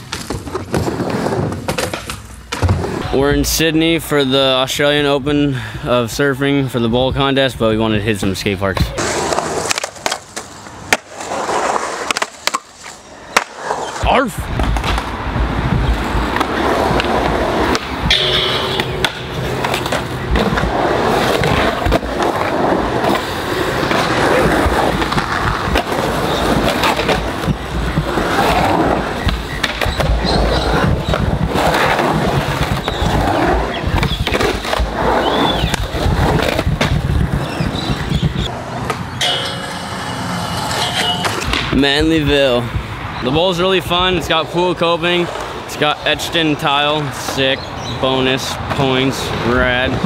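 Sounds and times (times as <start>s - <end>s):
skateboard wheels rolling on concrete: 0.0s - 5.6s, 6.7s - 50.0s
skateboard clacking on surface: 38.8s - 42.1s.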